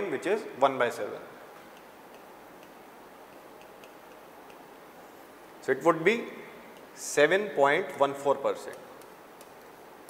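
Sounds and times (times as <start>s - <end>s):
low room hiss: 0.0s - 10.0s
chalk tapping on a board: 1.6s - 4.7s.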